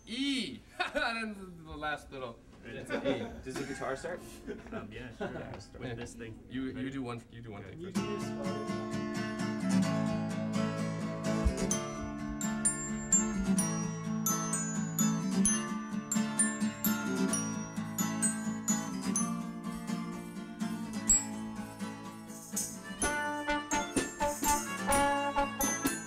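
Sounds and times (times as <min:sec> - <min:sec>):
plucked guitar notes: 0:08.0 - 0:21.8, 0:22.9 - 0:26.0.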